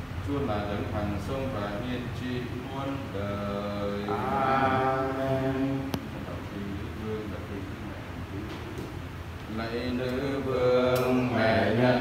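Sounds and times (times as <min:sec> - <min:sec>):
man chanting a prayer: 0:00.2 - 0:08.8, 0:09.5 - 0:12.0.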